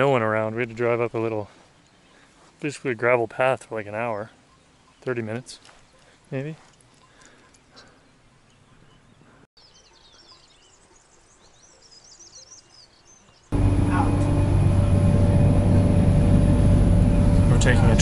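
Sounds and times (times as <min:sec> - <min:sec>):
birds chirping: 0:00.0 - 0:18.0.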